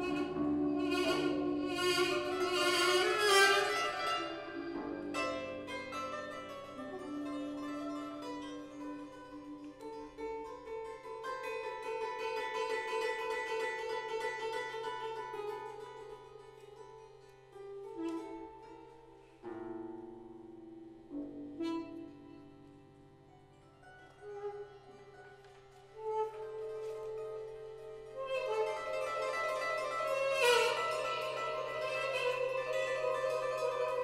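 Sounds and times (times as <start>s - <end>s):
held wind instrument notes: 0.0s - 9.6s
harp plucking: 0.0s - 34.0s.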